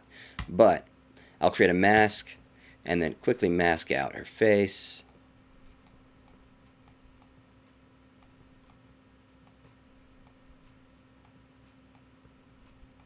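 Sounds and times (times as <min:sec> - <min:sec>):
faint mouse clicks: 0:11.2 - 0:12.1.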